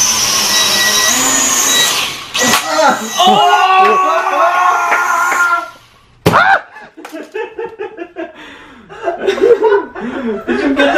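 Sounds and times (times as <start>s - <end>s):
person chuckling and laughing: 6.6s - 10.9s.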